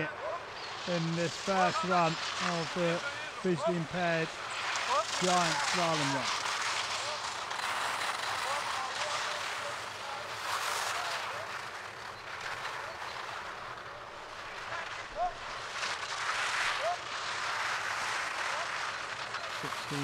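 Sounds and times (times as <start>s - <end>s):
skis scraping on icy snow: 0.0s - 20.0s.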